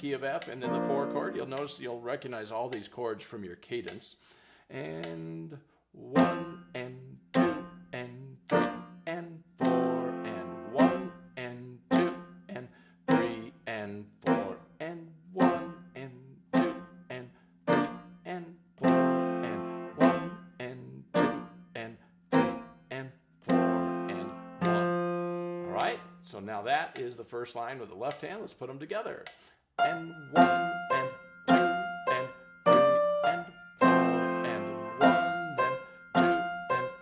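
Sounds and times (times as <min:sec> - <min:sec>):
piano chords: 0:00.6 - 0:01.6, 0:06.1 - 0:07.8, 0:08.5 - 0:09.0, 0:09.6 - 0:11.2, 0:11.9 - 0:12.4, 0:13.1 - 0:13.5, 0:14.2 - 0:14.6, 0:15.4 - 0:15.9, 0:16.5 - 0:18.2, 0:18.8 - 0:21.7, 0:22.3 - 0:22.8, 0:23.5 - 0:26.4, 0:29.8 - 0:37.0.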